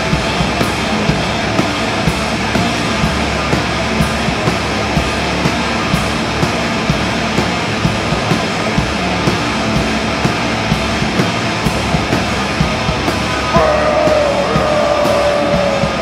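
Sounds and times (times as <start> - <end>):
bass guitar: 0.0 - 16.0
distorted electric guitar: 0.0 - 16.0
drums steady beat: 0.0 - 16.0.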